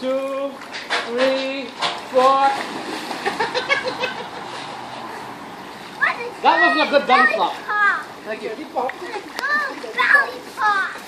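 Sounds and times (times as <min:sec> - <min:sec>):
splash into pool: 0:00.8 - 0:03.8
bursts of laughter: 0:03.2 - 0:04.6.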